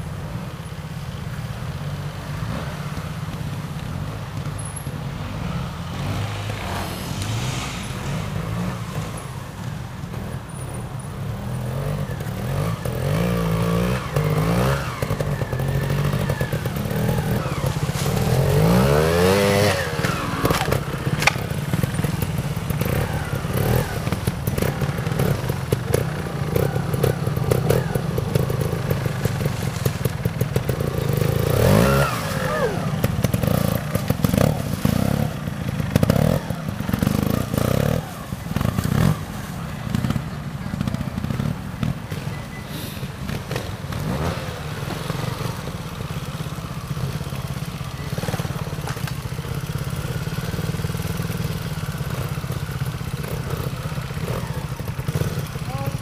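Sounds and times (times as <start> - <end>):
motorcycle engine revving: 0.6 - 56.0.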